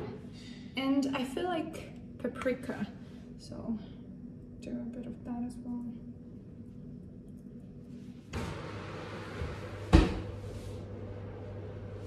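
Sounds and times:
steady hum and hiss: 0.0s - 12.0s
oven door thud: 9.8s - 10.4s.

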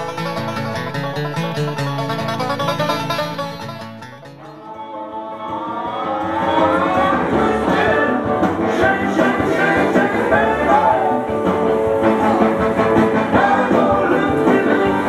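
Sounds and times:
guitar: 0.0s - 15.0s
rock and roll song: 0.0s - 15.0s
person singing: 4.4s - 15.0s.

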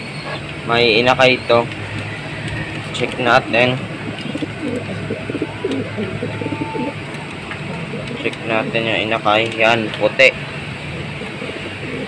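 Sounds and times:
pigeons cooing: 0.0s - 12.0s
steady low hum: 0.0s - 12.0s.

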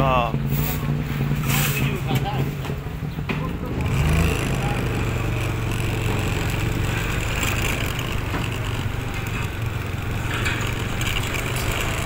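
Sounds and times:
engine droning: 0.0s - 12.0s
street traffic: 0.0s - 12.0s.

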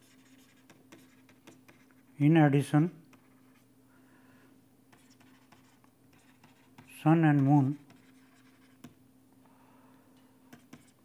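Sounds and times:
stylus scratching on pen tablet: 0.0s - 2.1s, 3.1s - 3.7s, 4.9s - 9.0s, 10.5s - 11.0s
low steady hum: 0.0s - 11.0s.

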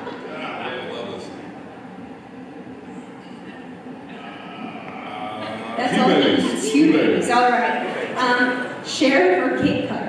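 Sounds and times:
hall room noise with audience: 0.0s - 10.0s.

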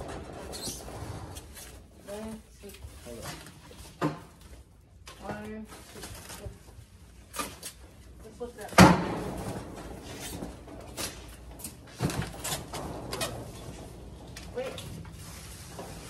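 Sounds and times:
dolly rolling: 0.0s - 2.4s, 9.0s - 16.0s.

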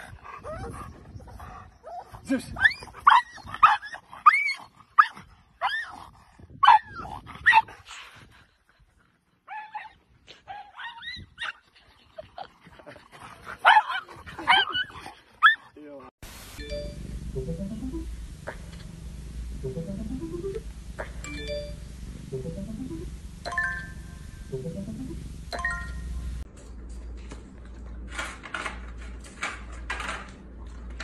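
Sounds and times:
dog yipping: 9.5s - 11.6s.

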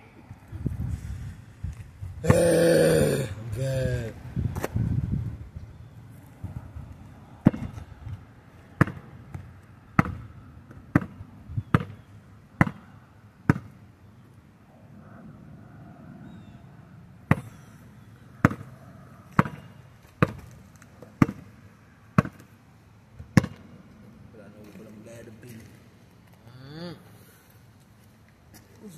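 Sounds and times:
basketball bouncing on gravel: 7.4s - 7.9s, 8.6s - 13.8s, 17.3s - 17.6s, 18.4s - 22.6s, 23.2s - 23.7s.

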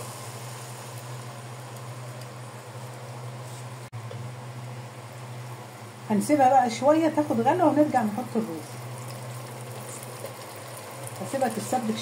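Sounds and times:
kitchen fan humming: 0.0s - 12.0s.

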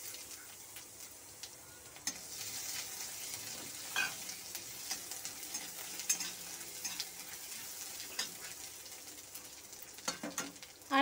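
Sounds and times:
paste sizzling in a wok: 0.0s - 11.0s.

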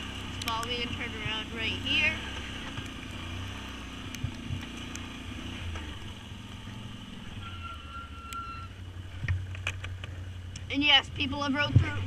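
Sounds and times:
atv engine running: 0.0s - 12.0s.

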